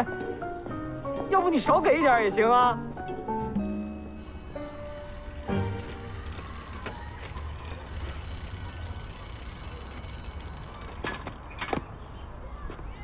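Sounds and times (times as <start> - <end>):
background music: 0.0 - 8.8.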